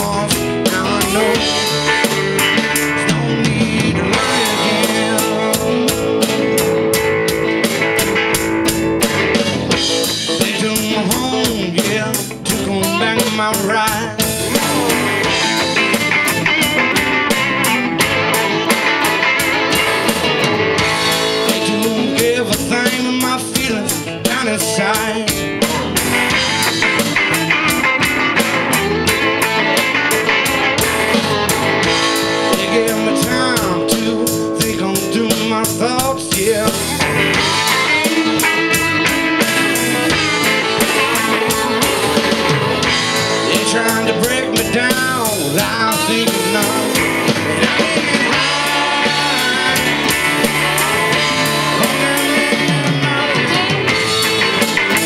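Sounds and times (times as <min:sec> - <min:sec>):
drum kit: 0:00.0 - 0:55.0
electric guitars: 0:00.0 - 0:55.0.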